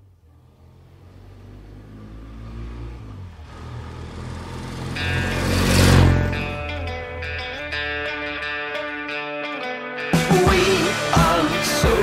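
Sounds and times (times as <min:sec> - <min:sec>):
vehicle engine running: 0:00.0 - 0:08.6
electric guitar music: 0:04.9 - 0:12.0.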